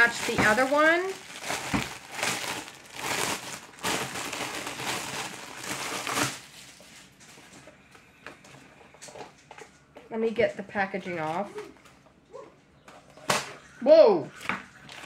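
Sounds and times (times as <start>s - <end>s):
plastic bag crinkling: 0.0s - 7.7s.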